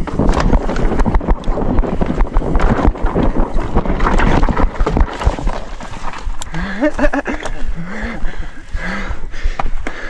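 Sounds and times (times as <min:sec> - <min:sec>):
bike clattering over bumps: 0:00.0 - 0:07.7
bike tyres rolling over dirt: 0:00.0 - 0:07.8
wind rumble on microphone: 0:00.0 - 0:09.8.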